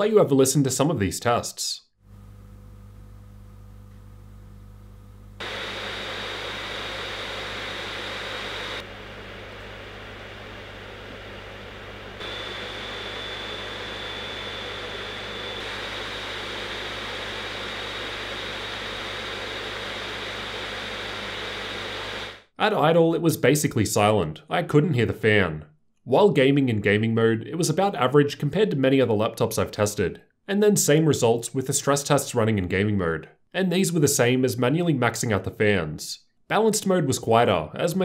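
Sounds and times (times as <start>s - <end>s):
faint high fan whine: 4.9s - 22.3s
laptop cooling fans whooshing: 5.4s - 22.4s.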